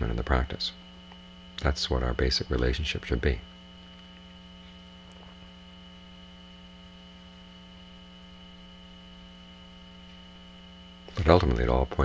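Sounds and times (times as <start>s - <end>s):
electrical hum: 0.0s - 12.0s
faint high whine: 0.0s - 12.0s.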